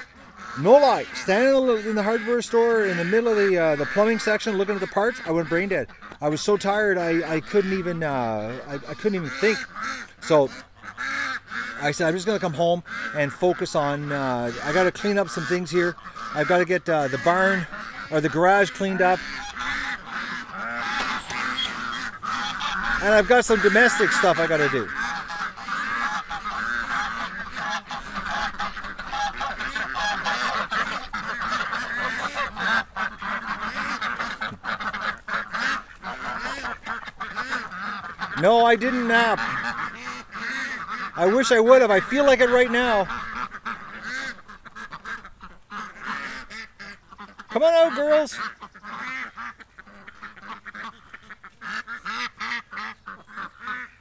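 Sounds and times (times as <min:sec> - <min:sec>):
ducks quacking: 0:00.0 - 0:54.0.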